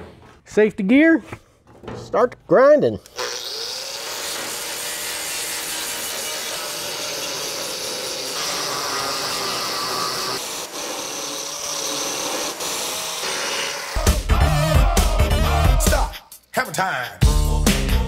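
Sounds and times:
angle grinder grinding metal: 3.0s - 16.0s.

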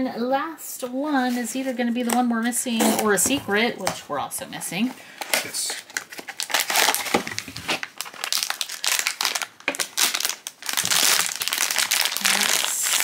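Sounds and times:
foil bag crinkling: 5.9s - 13.0s.

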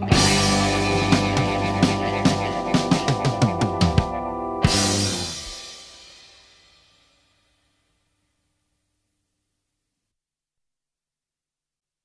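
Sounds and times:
guitar band final chord: 0.0s - 6.0s
cymbal crash: 4.7s - 7.5s.

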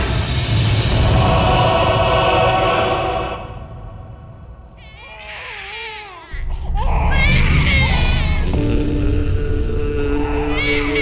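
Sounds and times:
tense film music: 0.0s - 11.0s.

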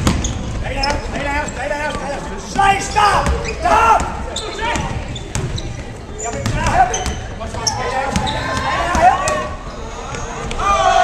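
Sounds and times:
sneaker squeaks: 0.0s - 10.6s
people shouting: 10.5s - 11.0s.

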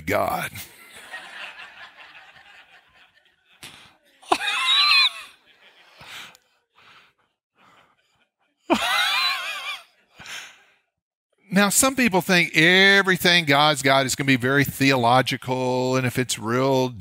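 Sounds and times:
man laughing hard: 4.3s - 6.1s, 7.6s - 10.1s
catches of breath: 10.1s - 10.9s.

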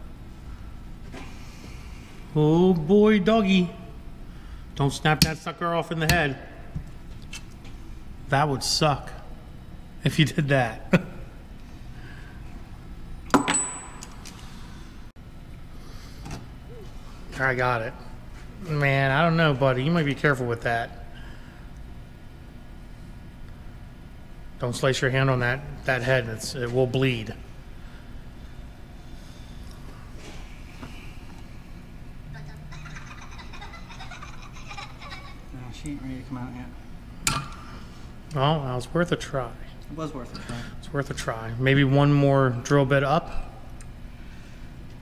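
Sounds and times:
low steady hum: 0.0s - 45.0s
metal-on-metal clink: 13.3s - 14.2s.

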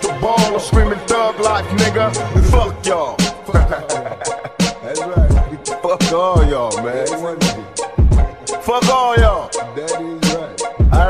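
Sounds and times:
hi-hat or snare hits: 0.0s - 7.9s
man rapping over hip hop beat: 0.0s - 11.0s
deep kick drums: 0.8s - 1.0s, 2.4s - 2.8s, 3.6s - 3.8s, 5.2s - 5.6s, 8.0s - 8.3s.

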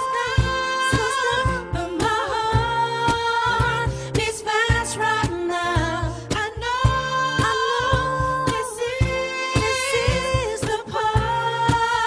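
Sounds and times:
acoustic guitar: 0.0s - 12.0s
woman singing: 0.0s - 12.0s.

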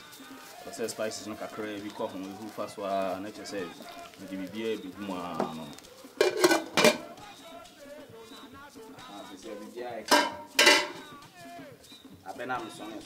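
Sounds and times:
metal pot and lid clanking: 6.2s - 7.1s, 10.1s - 11.0s.

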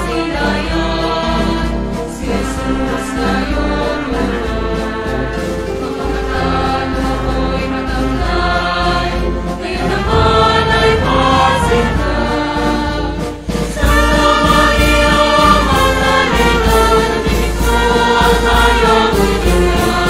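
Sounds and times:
choir singing with instruments: 0.0s - 20.0s.

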